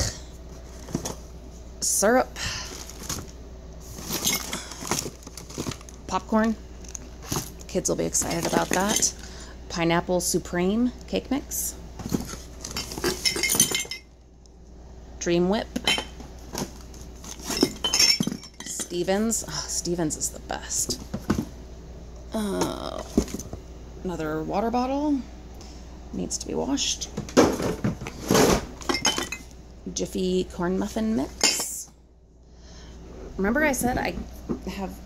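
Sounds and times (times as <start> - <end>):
items clattering in cardboard box: 0.6 - 1.3, 2.6 - 3.3, 3.9 - 9.2, 12.0 - 14.0, 15.8 - 19.2, 20.9 - 21.5, 22.6 - 23.6, 27.2 - 29.4
glass jars and bottles clinking: 4.0 - 5.8, 8.2 - 9.2, 12.3 - 14.1, 15.8 - 16.2, 17.4 - 19.1, 28.4 - 29.5, 31.4 - 31.8.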